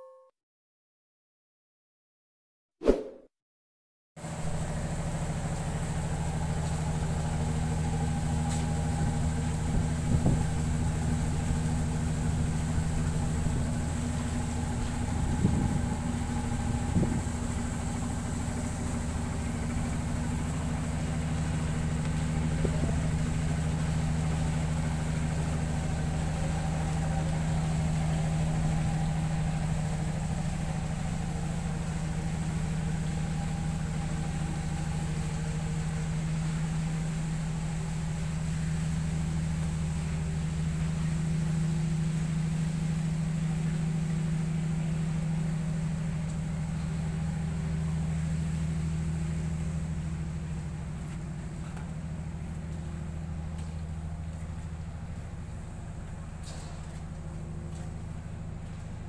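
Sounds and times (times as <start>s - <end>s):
boat engine running: 4.2s - 59.0s.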